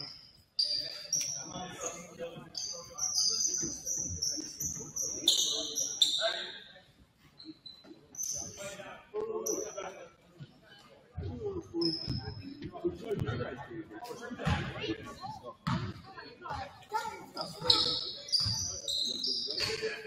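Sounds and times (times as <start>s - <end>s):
voices: 0.0s - 20.0s
shoes squeaking on hardwood: 0.6s - 6.3s, 17.4s - 19.8s.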